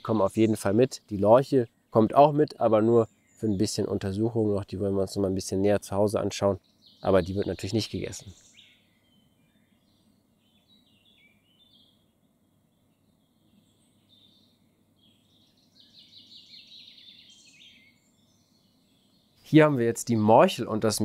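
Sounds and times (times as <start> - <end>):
songbird chirping: 0.0 - 21.0.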